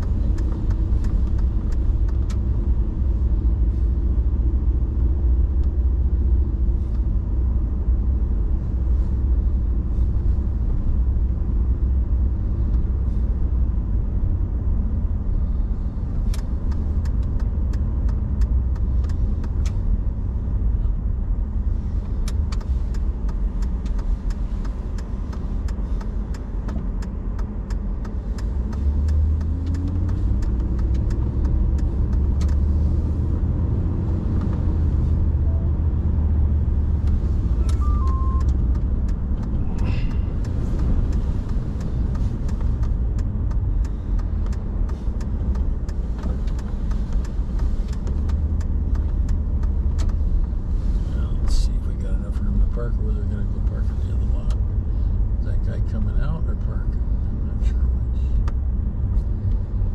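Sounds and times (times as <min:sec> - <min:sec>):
car engine and tyres rumble: 0:00.0 - 0:59.9
light ticks and rattles: 0:21.8 - 0:35.2, 0:38.4 - 0:54.8.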